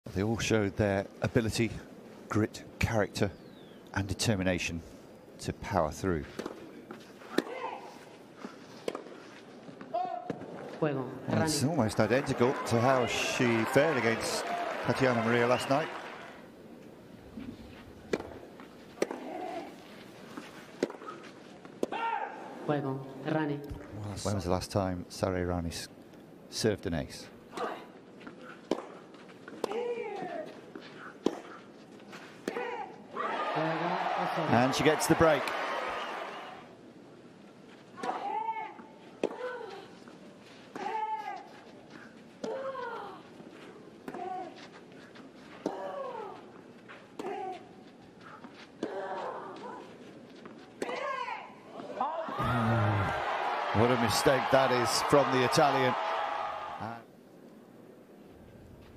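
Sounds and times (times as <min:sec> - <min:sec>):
tennis ball thuds: 0:18.1 - 0:18.4
tennis players grunting: 0:19.0 - 0:19.9, 0:51.9 - 0:56.8
low crowd hush: 0:52.3 - 0:56.8.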